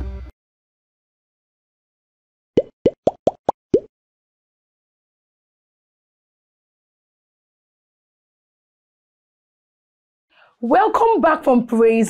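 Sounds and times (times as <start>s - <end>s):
cartoon plop sound effects: 2.6s - 3.9s.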